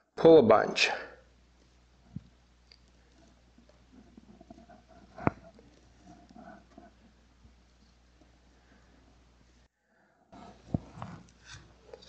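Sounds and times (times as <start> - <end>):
fingers rustling in potting mix: 1.5 - 9.6, 10.3 - 12.0.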